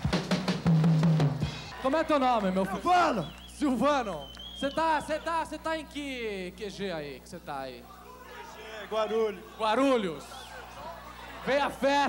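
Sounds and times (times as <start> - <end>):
drum kit fast run: 0.0 - 2.4.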